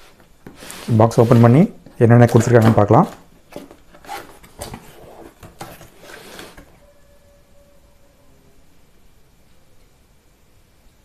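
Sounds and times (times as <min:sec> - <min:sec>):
cardboard rustling and scraping: 0:00.0 - 0:06.8.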